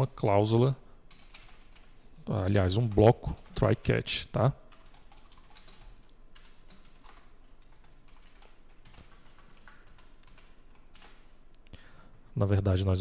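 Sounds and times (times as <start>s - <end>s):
computer keyboard clicking: 1.1s - 2.0s, 4.7s - 11.3s.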